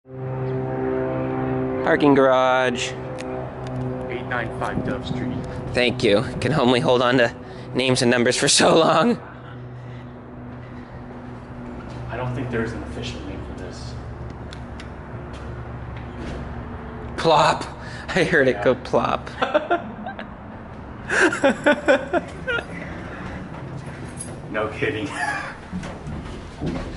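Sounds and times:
low mechanical hum: 0.1s - 18.1s
man speaking: 4.1s - 9.2s, 17.2s - 19.4s.

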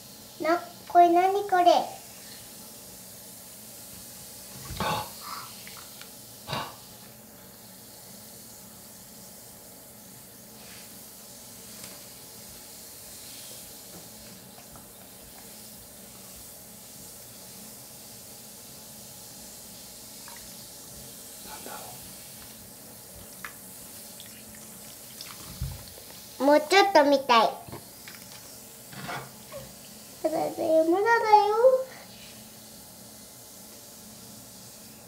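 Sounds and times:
bath ball fizzing in water: 18.9s - 26.8s
splashes and drips of water: 20.2s - 20.6s, 23.4s - 26.1s.

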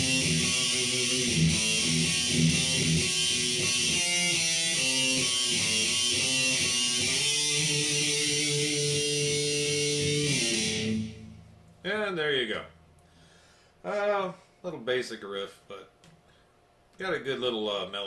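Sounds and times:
electric guitar riff: 0.0s - 11.4s.

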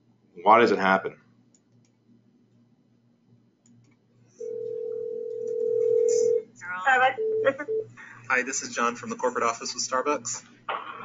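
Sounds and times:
faint hum: 0.0s - 11.0s
telephone ringing tone: 4.4s - 6.4s.

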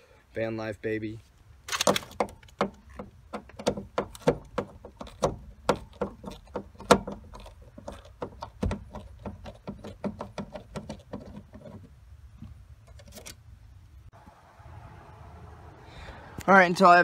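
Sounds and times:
screwdriver clicking and creaking: 12.8s - 13.4s.

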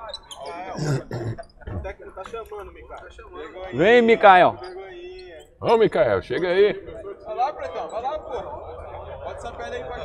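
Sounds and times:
men talking in background: 0.0s - 10.0s.

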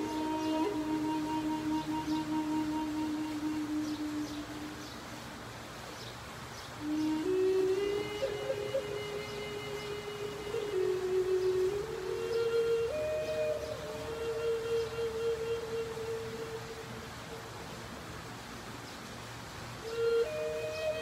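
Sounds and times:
wooden flute slow melody: 0.0s - 5.6s, 6.8s - 18.2s, 19.7s - 21.0s.

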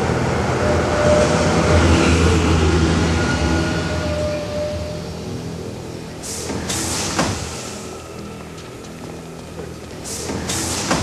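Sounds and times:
low rumbling drone: 0.0s - 10.8s.

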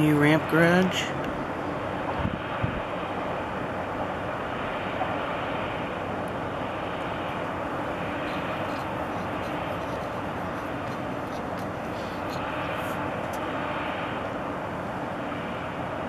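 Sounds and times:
city rumble and hiss: 0.0s - 16.0s.

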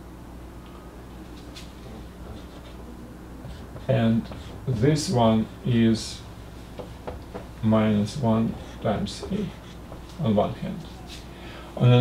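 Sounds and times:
marker writing on whiteboard: 1.8s - 5.2s, 6.8s - 10.4s
man talking: 3.8s - 6.3s, 7.6s - 9.6s, 10.2s - 11.0s, 11.8s - 12.0s.

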